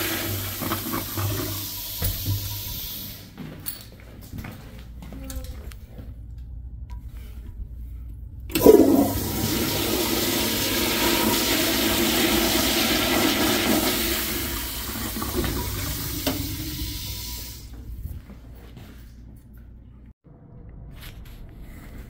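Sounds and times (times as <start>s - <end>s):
toilet flushing: 0.0s - 3.4s, 8.5s - 17.8s.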